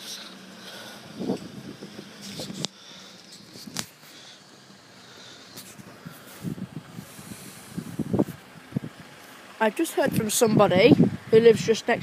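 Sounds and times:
wind buffeting microphone: 1.0s - 2.7s, 5.7s - 9.2s, 10.0s - 12.0s.

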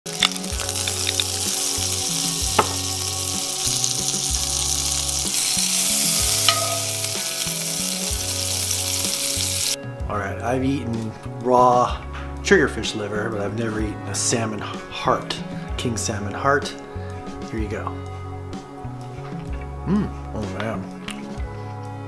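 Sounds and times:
spattering oil clicks: 0.1s - 3.0s
oil sizzling in a pan: 0.1s - 9.8s.

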